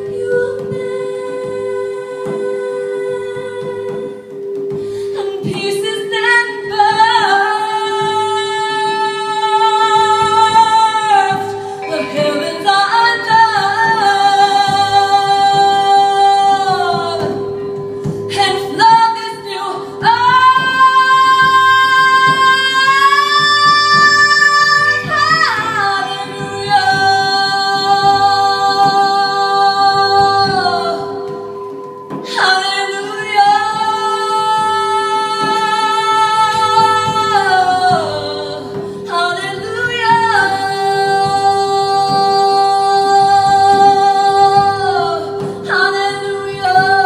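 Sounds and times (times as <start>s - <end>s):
sustained accompaniment: 0.0s - 47.0s
woman singing: 0.0s - 47.0s
steady drone tone: 11.6s - 15.0s.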